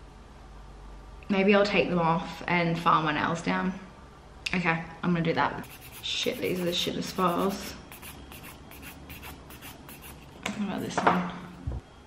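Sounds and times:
nail file scraping fingernails: 0:05.6 - 0:10.4.

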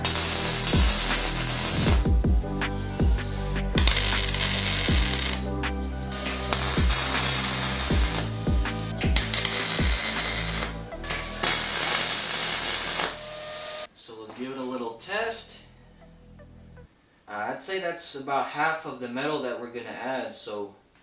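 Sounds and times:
welder crackling: 0:00.0 - 0:02.1, 0:03.8 - 0:05.5, 0:06.2 - 0:08.5, 0:09.1 - 0:13.9
background music with steady beat: 0:00.0 - 0:13.9.

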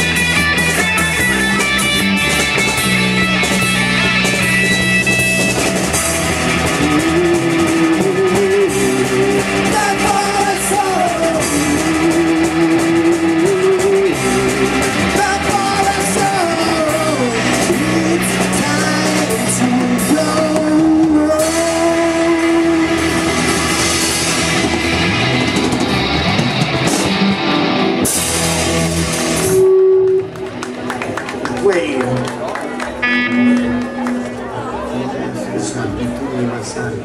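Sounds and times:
drum kit: 0:00.0 - 0:31.4
electric guitar: 0:00.0 - 0:36.0
electric bass: 0:00.0 - 0:36.2
man singing: 0:06.8 - 0:23.6.

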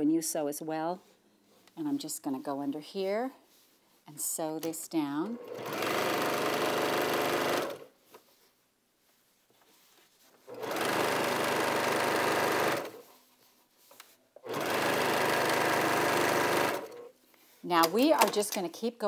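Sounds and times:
sewing machine stitching: 0:05.2 - 0:07.9, 0:10.5 - 0:13.1, 0:14.4 - 0:17.1.

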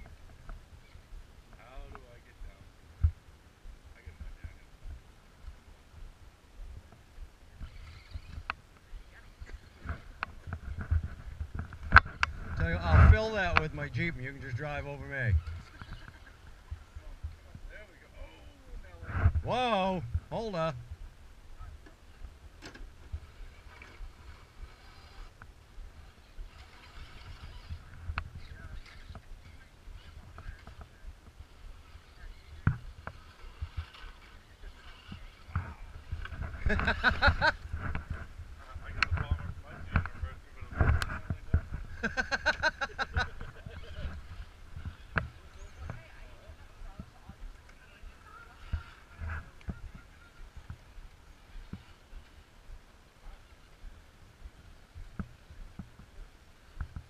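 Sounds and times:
wind rumble on microphone: 0:00.0 - 0:57.0.

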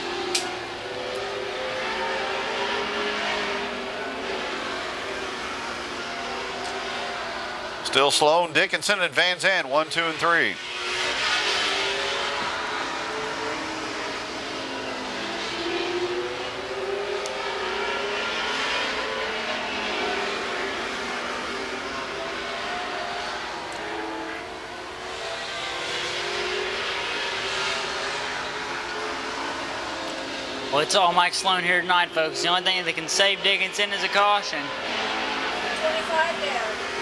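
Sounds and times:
race car engines passing: 0:00.0 - 0:37.0.

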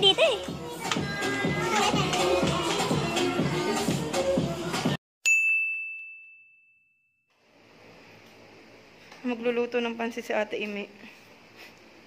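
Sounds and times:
music: 0:00.0 - 0:05.0
children's voices: 0:00.7 - 0:03.2
high bell-like ding: 0:05.2 - 0:07.2.

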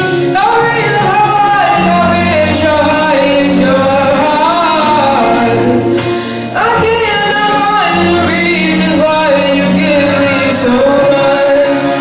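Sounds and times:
backing music: 0:00.0 - 0:12.0
young man singing: 0:00.0 - 0:12.0.

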